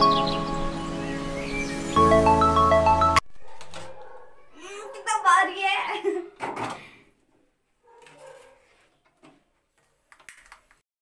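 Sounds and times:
person speaking: 4.6s - 6.3s.

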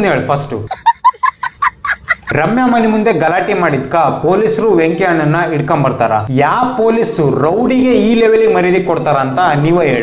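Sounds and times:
man talking: 0.0s - 0.7s, 2.3s - 10.0s
small child laughing: 0.7s - 2.5s.

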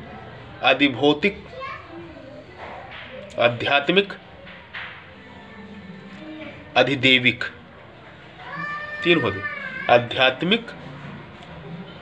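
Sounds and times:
cat meowing: 8.4s - 10.0s.

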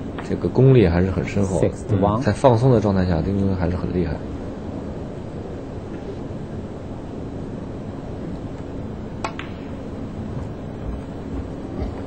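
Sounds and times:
hall hum: 0.0s - 12.0s
ball on ball click: 9.2s - 9.7s
cue striking ball click: 9.2s - 9.7s.

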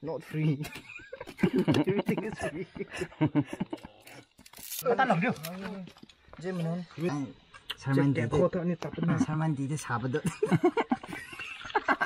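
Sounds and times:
men talking: 0.0s - 3.7s, 4.8s - 10.8s.

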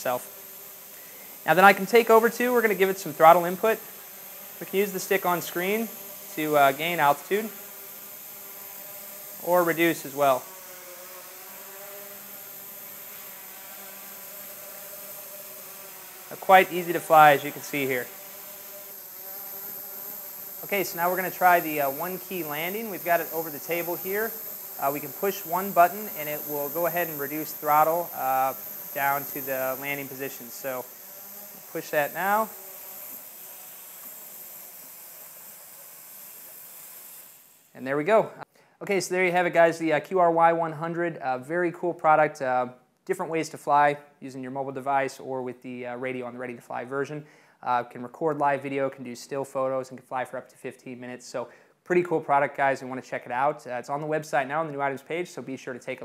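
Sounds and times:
drone propellers buzzing: 0.0s - 37.7s.

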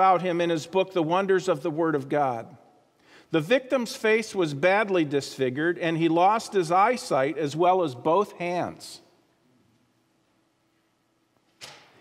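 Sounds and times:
sharp in-breath into microphone: 3.0s - 3.3s.

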